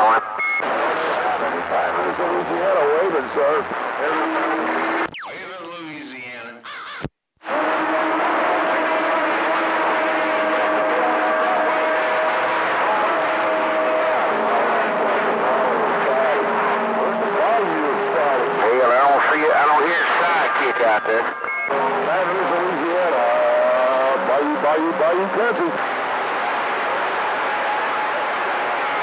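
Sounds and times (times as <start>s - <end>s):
garbled radio voices: 0.0s - 7.1s, 17.3s - 25.8s
radio static: 0.0s - 7.1s, 17.6s - 23.1s
warbly tones: 5.1s - 5.9s.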